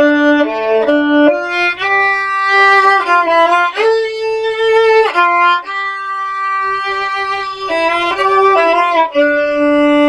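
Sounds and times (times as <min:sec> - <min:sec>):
bowed violin notes: 0:00.0 - 0:10.0.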